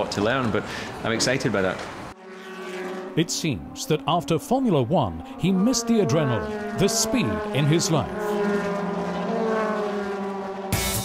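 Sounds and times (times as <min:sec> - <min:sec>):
race car engine driving past: 0:00.0 - 0:11.0.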